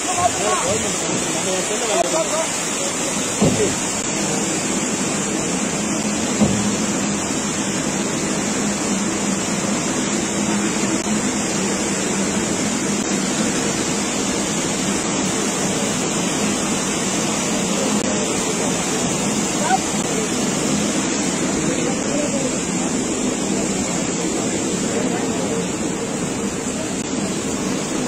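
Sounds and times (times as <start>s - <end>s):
turbulent river water rushing: 0.0s - 28.0s.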